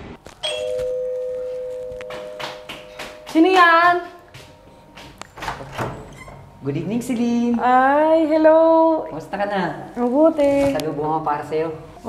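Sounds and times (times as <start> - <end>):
two-note doorbell chime: 0.4 - 4.0.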